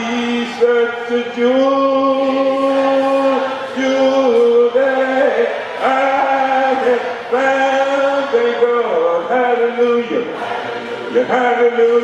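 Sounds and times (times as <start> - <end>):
congregation singing along: 0.0 - 12.0
man singing hymn into microphone: 0.0 - 12.0.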